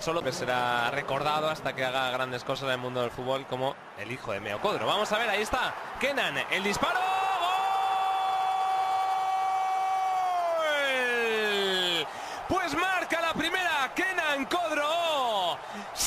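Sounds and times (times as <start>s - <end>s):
fast excited commentary: 0.1s - 7.6s, 10.6s - 16.0s.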